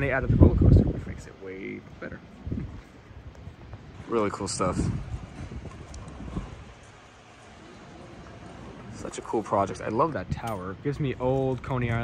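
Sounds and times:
outdoor ambience: 0.0s - 12.0s.

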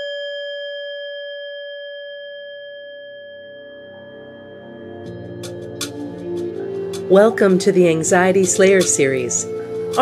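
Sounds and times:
bell ringing: 0.0s - 6.1s
soft low sustained music tones: 3.8s - 10.0s.

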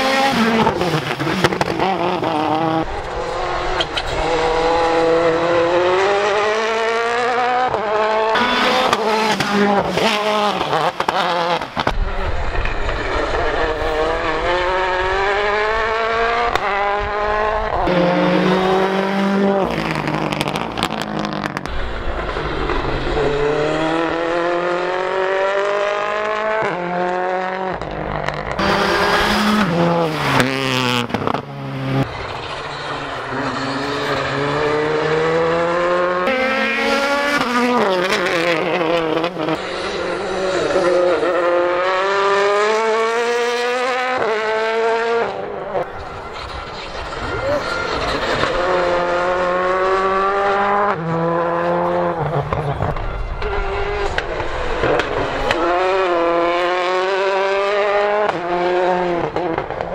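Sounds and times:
rally cars accelerating past: 0.0s - 59.9s.

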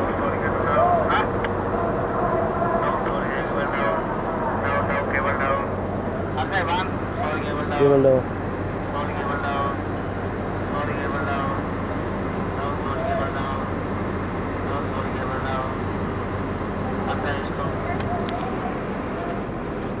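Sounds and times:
distant voices calling out: 0.0s - 20.0s
low mechanical drone: 0.0s - 20.0s.

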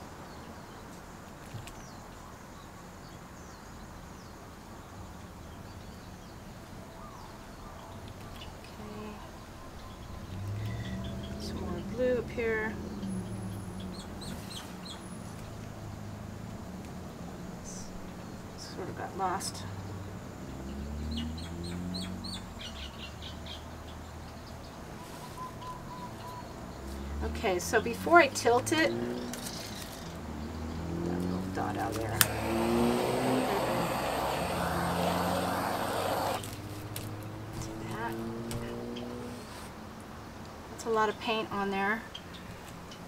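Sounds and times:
small bird chirping: 20.7s - 27.1s
distant motor drone: 27.2s - 39.8s
steady low hum: 31.4s - 36.5s
hiss: 32.2s - 36.5s.

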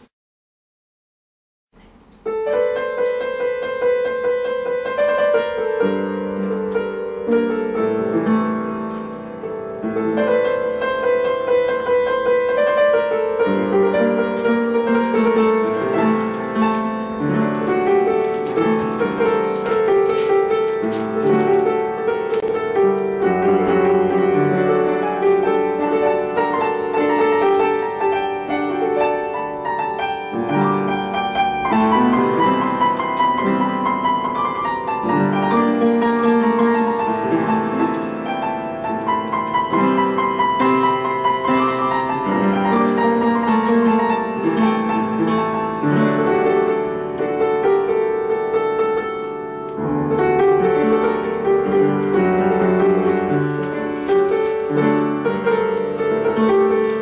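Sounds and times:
solo piano folk tune: 1.8s - 57.0s.

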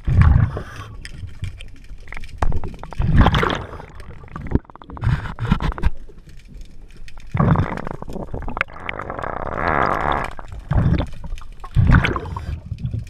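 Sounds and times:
underwater exhaled bubbles gurgling: 0.0s - 13.0s.

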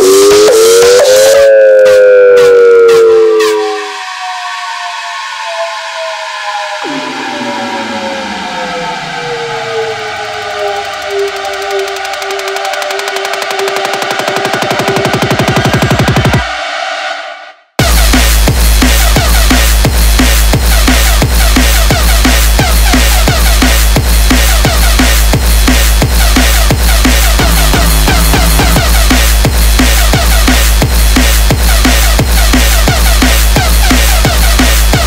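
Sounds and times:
electronic breakcore music: 0.0s - 4.0s, 9.4s - 16.7s, 17.8s - 35.0s
rising synth tone: 0.0s - 15.1s, 27.0s - 30.6s
deep falling sweep: 27.1s - 30.1s.

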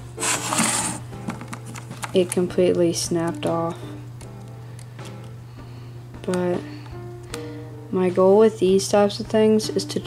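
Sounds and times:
faint music: 0.0s - 10.0s
fingers rustling on plastic case: 0.2s - 2.4s.

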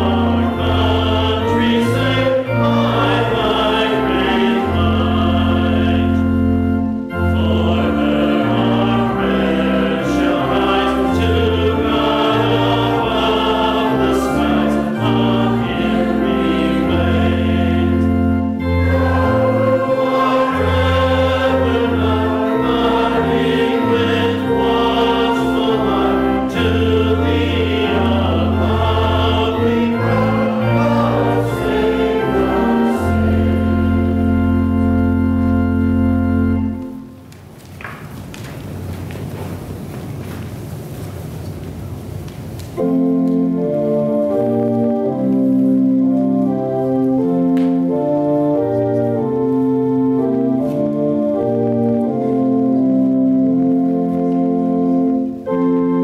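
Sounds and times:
congregation singing a hymn: 0.0s - 37.2s, 42.8s - 56.0s
organ notes: 0.0s - 37.6s, 42.6s - 56.0s.

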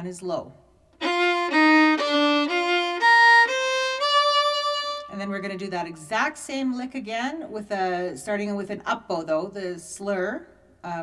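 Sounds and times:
fiddle bowed notes: 1.0s - 5.7s.

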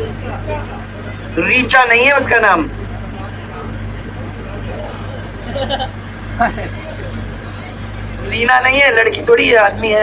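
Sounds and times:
bus engine idling: 0.0s - 10.0s
faint crowd voices: 0.0s - 10.0s.

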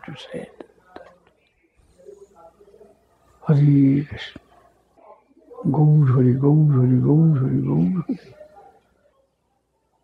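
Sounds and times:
faint quiet speech: 0.0s - 10.0s.

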